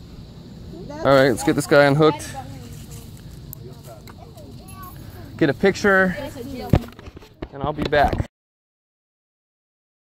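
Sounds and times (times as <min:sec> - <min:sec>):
faint voices: 0:00.6 - 0:08.2.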